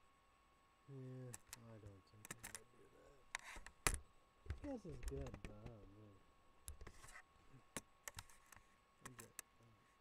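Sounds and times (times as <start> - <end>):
sharp clicks and taps: 3.9 - 5.9.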